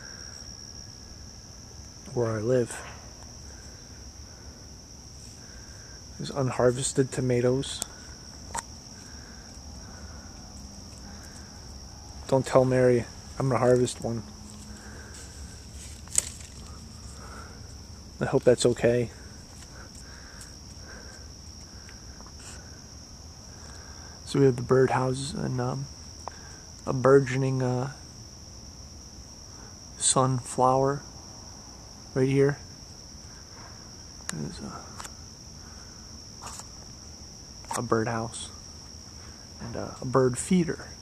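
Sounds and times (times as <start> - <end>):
crickets trilling: 0.0 - 41.0.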